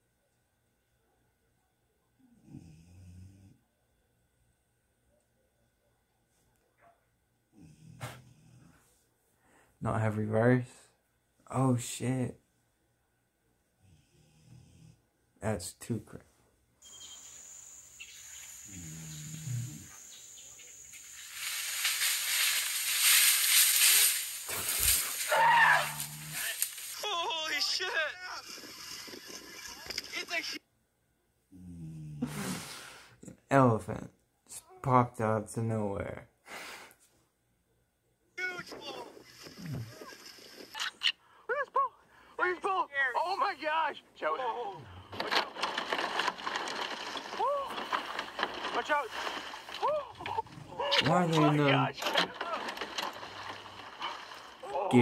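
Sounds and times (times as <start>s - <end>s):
elephant calling: 16.9s - 27.0s
excited voices shouting: 25.2s - 28.4s.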